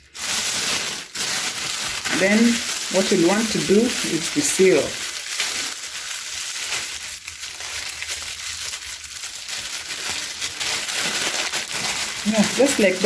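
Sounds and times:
plastic bag crinkling: 0:00.0 - 0:13.0.

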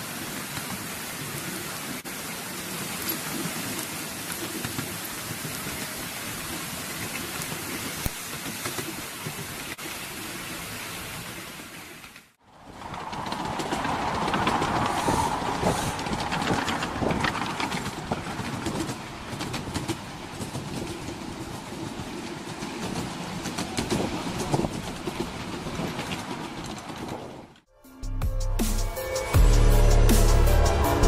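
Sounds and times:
wheels clicking over rail joints: 0:00.2 - 0:10.3, 0:11.1 - 0:27.7
miniature train rolling on track: 0:00.2 - 0:27.6.

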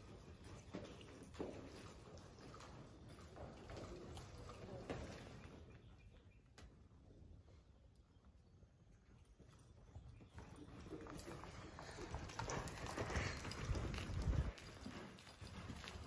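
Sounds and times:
horse hoofbeats on soft dirt: 0:00.0 - 0:16.0.

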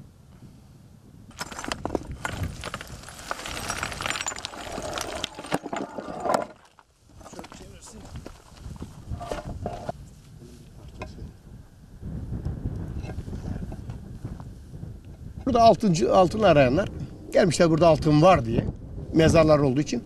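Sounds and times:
stone fragments clattering: 0:01.3 - 0:08.2
people talking: 0:07.3 - 0:08.2, 0:15.5 - 0:20.0.

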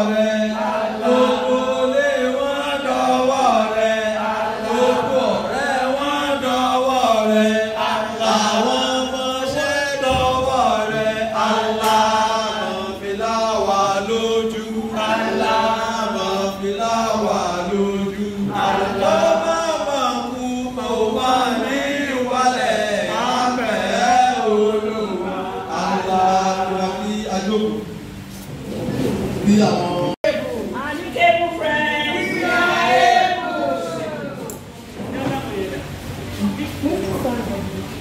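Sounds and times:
chanted singing with music: 0:00.0 - 0:27.4.

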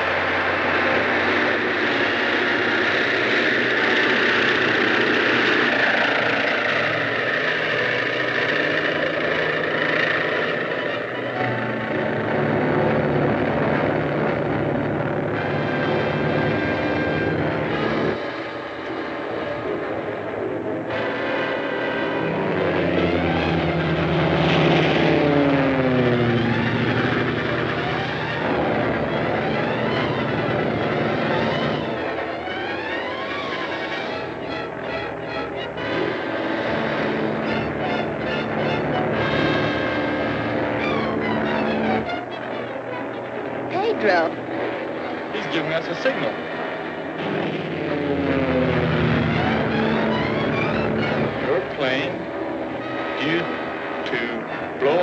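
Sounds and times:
film music: 0:00.0 - 0:55.0
propeller aircraft engine drone: 0:00.0 - 0:55.0.

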